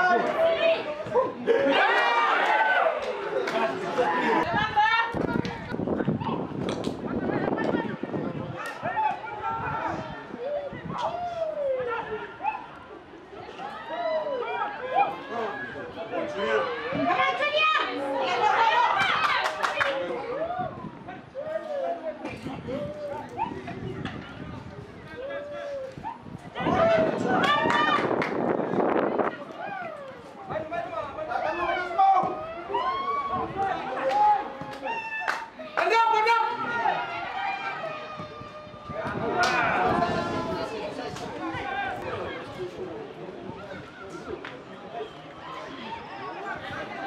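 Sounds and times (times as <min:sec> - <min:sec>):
men shouting and calling out: 0:00.0 - 0:06.6, 0:07.2 - 0:23.9, 0:25.0 - 0:47.0
many voices chattering: 0:00.0 - 0:47.0.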